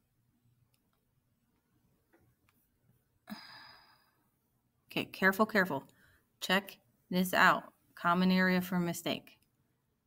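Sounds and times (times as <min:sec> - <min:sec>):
woman sighing: 0:03.3 - 0:04.2.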